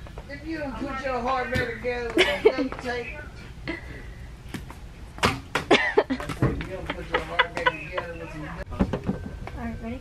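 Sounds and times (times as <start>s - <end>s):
laughter: 2.2s - 2.8s, 5.7s - 8.4s.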